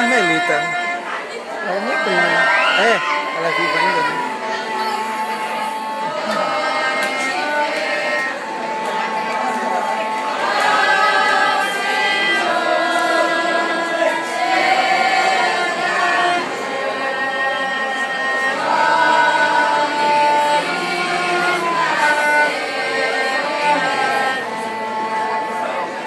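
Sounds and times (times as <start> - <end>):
mixed choir singing: 0.1 - 26.0.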